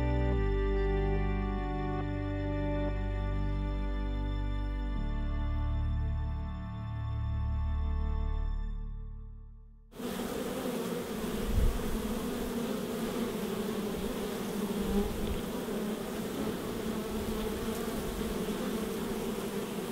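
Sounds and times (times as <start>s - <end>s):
music: 0.0s - 10.0s
honey bees buzzing: 10.0s - 19.9s.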